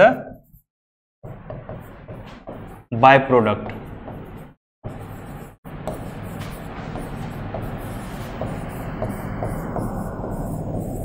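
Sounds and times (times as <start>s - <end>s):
low hum: 4.9s - 11.0s.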